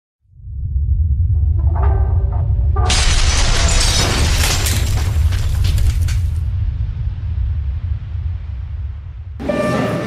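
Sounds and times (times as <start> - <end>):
deep steady rumble: 0.2 - 9.4
shattering crash with breaking debris: 2.9 - 6.5.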